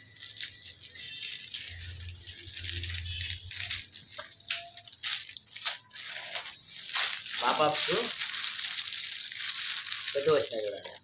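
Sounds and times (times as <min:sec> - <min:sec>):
plastic bags rustling and crinkling: 0:00.0 - 0:11.0.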